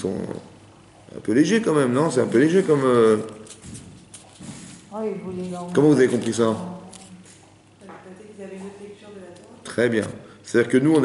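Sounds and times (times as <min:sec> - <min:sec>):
person speaking: 0:01.2 - 0:11.0.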